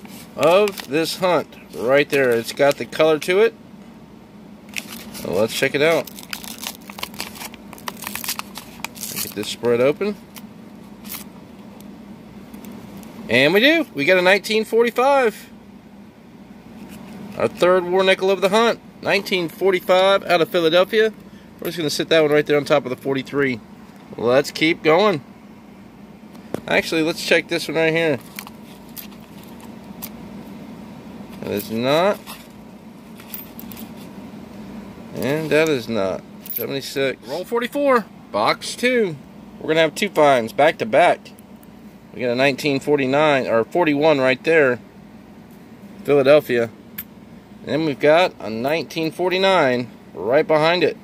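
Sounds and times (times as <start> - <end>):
steady low hum: 0.0 - 51.0
paper wrapper crinkling: 4.7 - 9.6.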